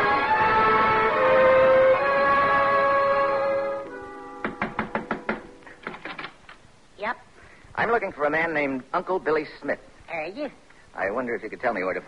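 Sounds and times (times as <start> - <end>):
music of held chords: 0.0 - 5.7
knocks on a door: 4.4 - 6.0.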